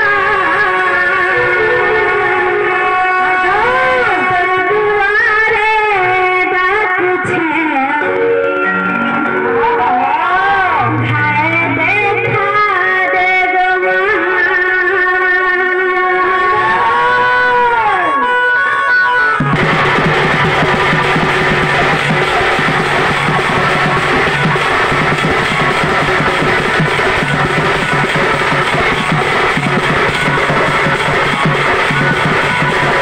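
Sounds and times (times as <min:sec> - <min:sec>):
folk music through a pa: 0:00.0 - 0:33.0
barrel drum beating: 0:19.4 - 0:33.0.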